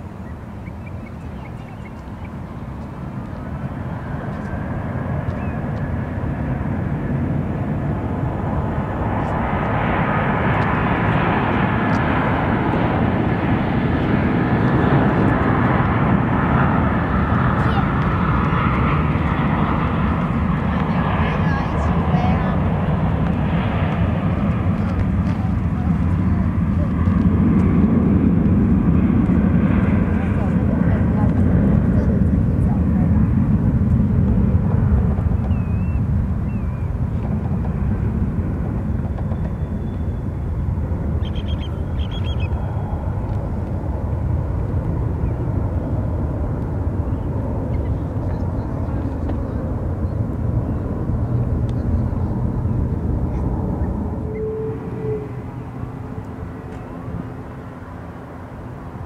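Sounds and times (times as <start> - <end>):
jet engines roaring: 0.0 - 59.0.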